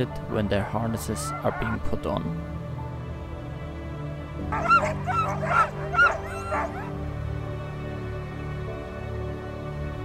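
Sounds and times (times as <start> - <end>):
sled dogs yelping: 0.6 - 1.8, 4.5 - 7.0.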